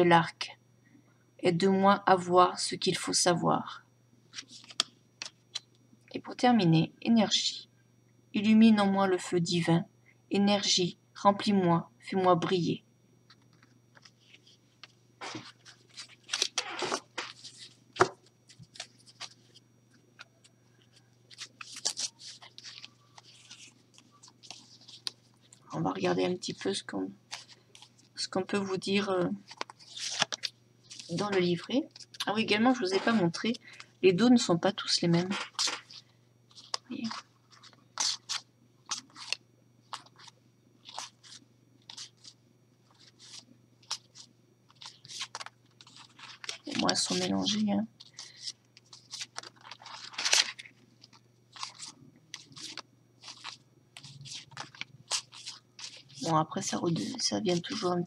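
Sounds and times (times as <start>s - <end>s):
cards rustling and sliding: 4.3s - 5.7s, 13.3s - 25.6s, 27.3s - 28.1s, 29.4s - 33.9s, 35.3s - 58.0s.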